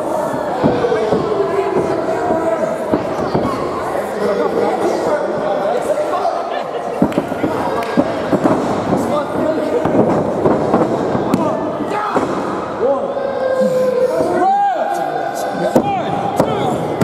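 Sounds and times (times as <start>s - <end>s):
crowd talking and shouting: 0.0s - 17.0s.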